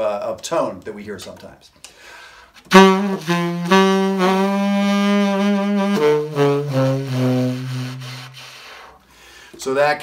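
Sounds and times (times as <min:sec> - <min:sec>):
breathy tenor saxophone: 0:02.6 - 0:09.1.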